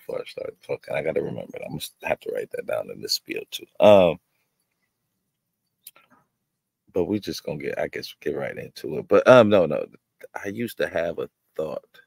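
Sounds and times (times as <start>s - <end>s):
man saying um: 0.0s - 4.2s.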